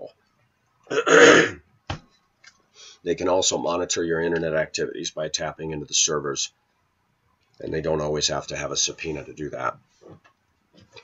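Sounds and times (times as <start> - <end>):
man clearing his throat: 0.9 - 1.6.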